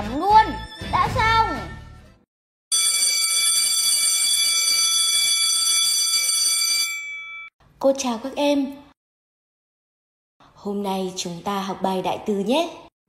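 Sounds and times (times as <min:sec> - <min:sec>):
electric school bell ringing: 0:02.7 - 0:07.5.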